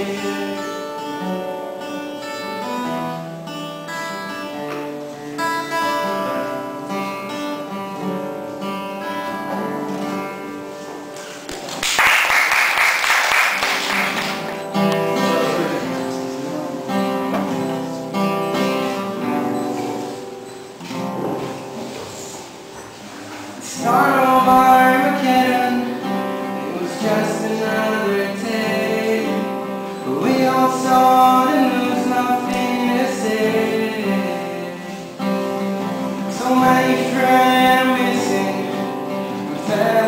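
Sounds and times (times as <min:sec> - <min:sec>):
acoustic guitar playing: 0:00.0 - 0:40.0.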